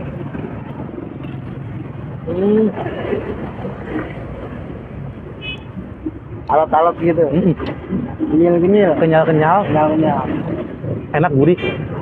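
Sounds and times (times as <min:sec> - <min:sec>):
street traffic rush: 0:00.0 - 0:12.0.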